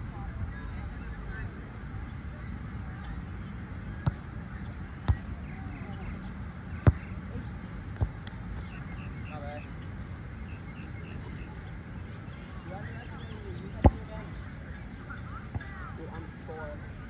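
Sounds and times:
faint distant voices: 0.0s - 17.0s
low background rumble: 0.0s - 17.0s
volleyball struck by hands: 8.0s - 9.1s, 13.8s - 14.2s.

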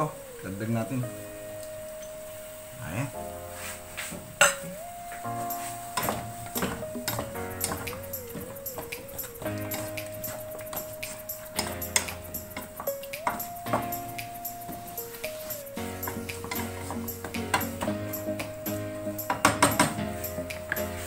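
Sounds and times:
slow background music: 0.0s - 21.0s
wooden spatula scraping a pan: 3.4s - 4.6s, 5.3s - 19.0s.

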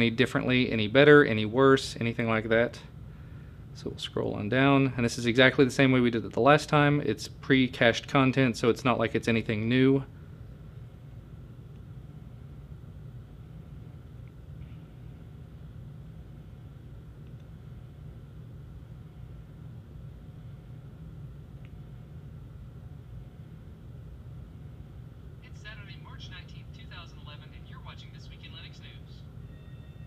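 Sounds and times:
low room hum: 0.0s - 30.0s
man talking from phone speaker: 25.4s - 29.2s.

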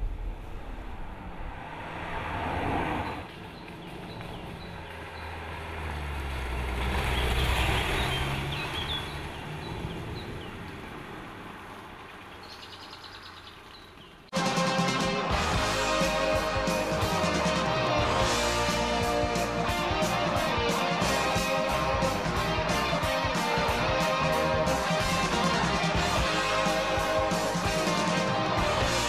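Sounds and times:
car driving past: 0.0s - 12.2s
birds chirping: 3.0s - 14.3s.

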